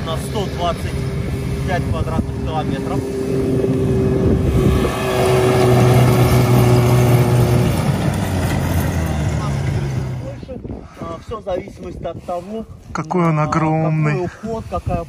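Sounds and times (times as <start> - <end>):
snowmobile engine passing: 0.0 - 10.5.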